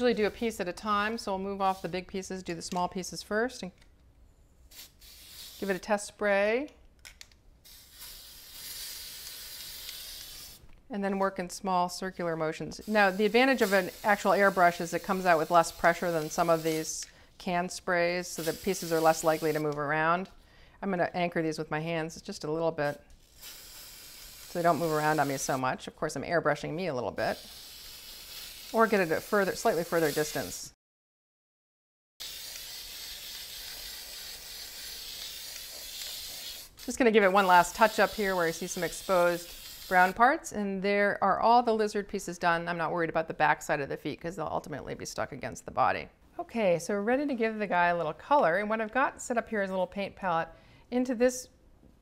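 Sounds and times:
aerosol can hissing: 4.7 - 5.9, 7.6 - 10.6, 12.8 - 17.1, 18.3 - 19.8, 23.2 - 25.6, 27.3 - 30.6, 32.2 - 40.2.

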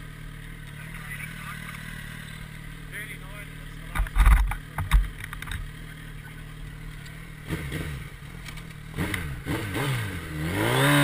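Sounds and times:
motorcycle engine idling: 0.0 - 9.5.

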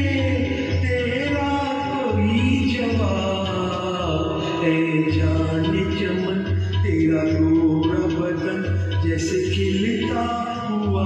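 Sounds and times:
man singing into a microphone: 0.0 - 11.0
recorded backing music: 0.0 - 11.0.

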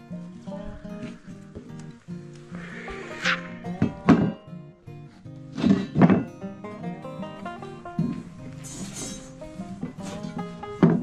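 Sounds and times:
background music: 0.0 - 11.0
loud sweeping sounds: 0.1 - 4.7.

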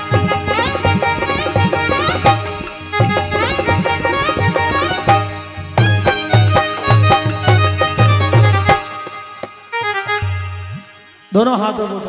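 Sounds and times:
steady drum beat: 0.0 - 9.6
harmonium melody: 0.0 - 11.4.

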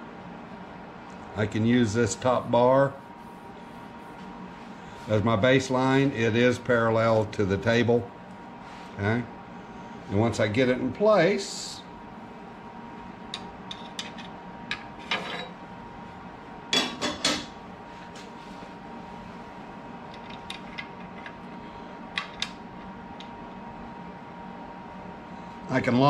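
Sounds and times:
steady background hum: 0.0 - 26.0.

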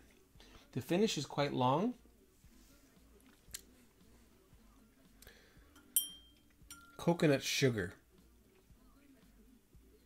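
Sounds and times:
glass clinking and ringing: 5.8 - 7.1.

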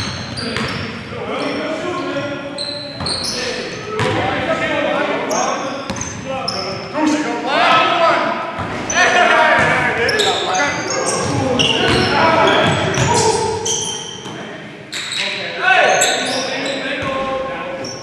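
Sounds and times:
basketball bouncing on court: 0.0 - 0.8, 4.0 - 4.3, 11.1 - 13.3
sneakers squeaking on floor: 0.0 - 4.6, 5.2 - 7.3, 8.6 - 18.0
players calling out: 0.1 - 18.0.

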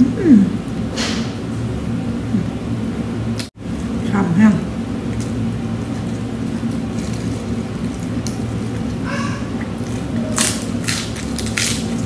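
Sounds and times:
steady low hum: 0.0 - 12.0
lettuce crunching being chewed: 5.0 - 12.0.

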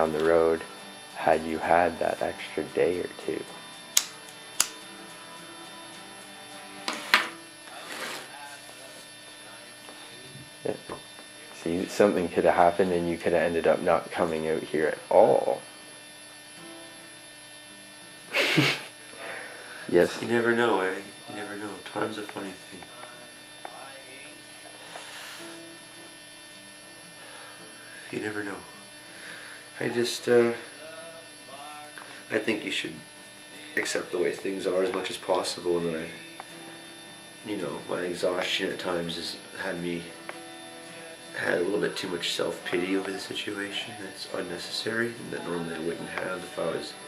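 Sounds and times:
electrical hum with buzzing: 0.0 - 47.0
lighter flame hiss: 3.3 - 5.0, 6.8 - 8.4, 24.6 - 25.8
cigarette lighter clicking: 3.9 - 4.9.

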